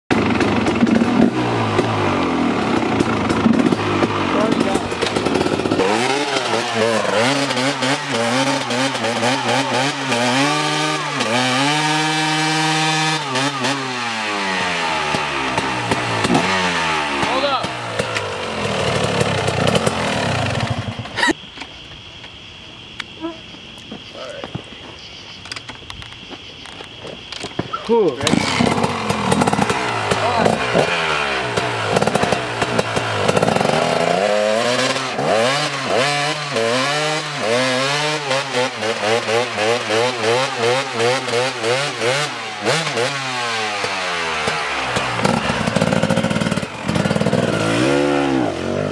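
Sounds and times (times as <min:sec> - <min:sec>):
dirt bike engine revving: 0:00.1 - 0:21.4, 0:28.0 - 0:48.9.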